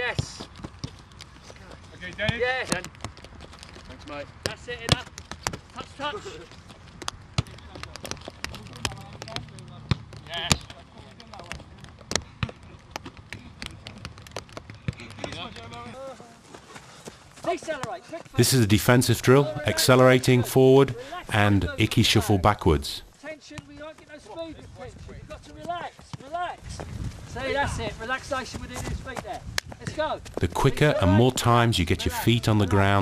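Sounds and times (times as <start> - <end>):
man coaching: 18.3 - 23.1, 30.4 - 33.0.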